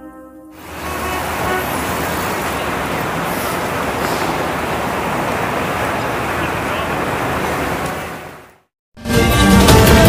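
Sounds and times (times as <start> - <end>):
faint car horn toots: 0.6 - 8.4
traffic rumble and hiss: 0.6 - 8.7.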